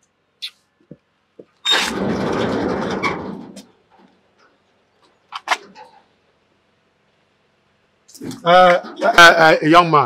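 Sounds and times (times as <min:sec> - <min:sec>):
metal gate rattling: 0:01.7 - 0:03.7.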